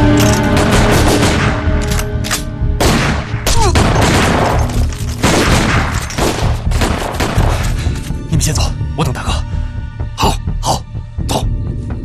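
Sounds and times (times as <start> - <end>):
background music score: 0.0 - 12.0.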